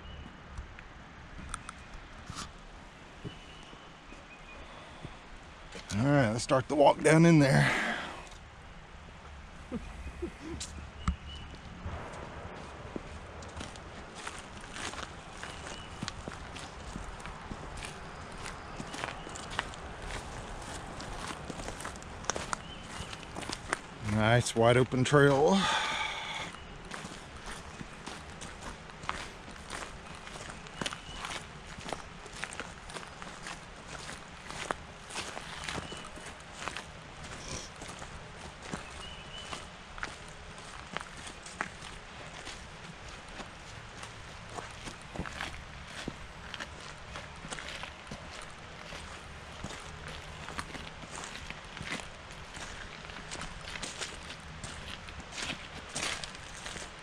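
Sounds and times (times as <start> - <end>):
footsteps on gravel and dry leaves: 10.3 - 57.0.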